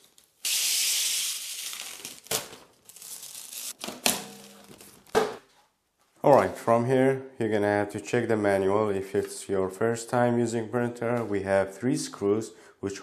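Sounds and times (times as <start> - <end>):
tape ripping off glass: 0.0 - 5.4
tape tearing and crinkling: 0.0 - 5.4.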